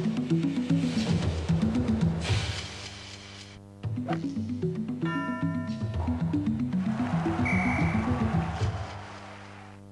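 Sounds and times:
sports theme music with fast bass line: 3.8s - 9.2s.

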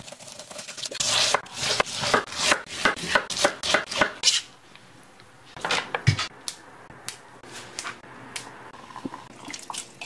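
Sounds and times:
knife chopping on wooden board: 1.3s - 4.4s.

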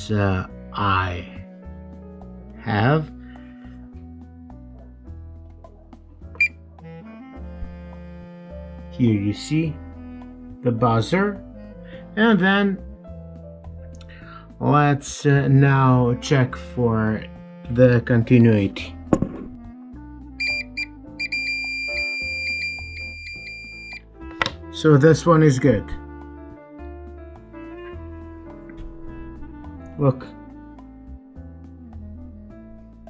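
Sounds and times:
background music: 0.0s - 33.0s
multimeter beep: 6.4s - 6.6s, 20.4s - 24.0s.

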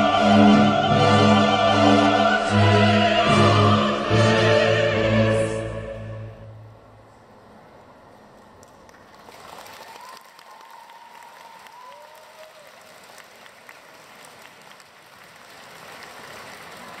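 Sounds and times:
audience applauding: 8.8s - 17.0s.

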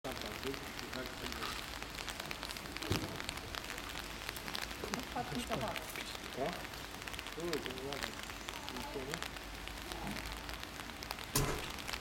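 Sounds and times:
steady crackling hiss: 0.1s - 12.0s.

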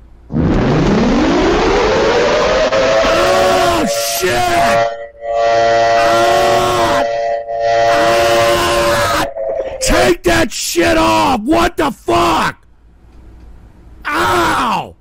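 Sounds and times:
distorted siren-like tone: 0.3s - 10.0s.

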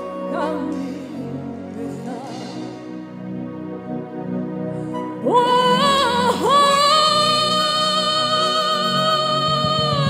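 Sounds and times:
soft steady accompaniment: 0.0s - 10.0s.

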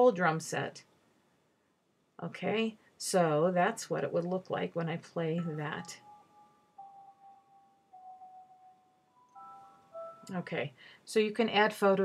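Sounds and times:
faint chime-like music: 5.4s - 10.5s.

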